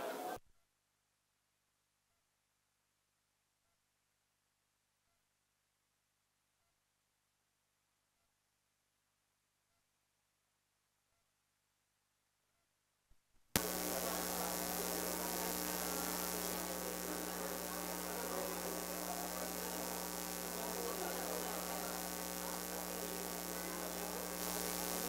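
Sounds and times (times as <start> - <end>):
mains hum through loudspeaker: 13.6 - 25.0.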